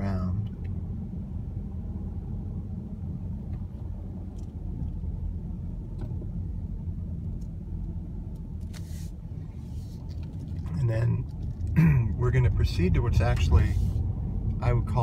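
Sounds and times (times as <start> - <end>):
car engine and tyres rumbling: 0.0 - 15.0
short hiss: 8.7 - 10.0.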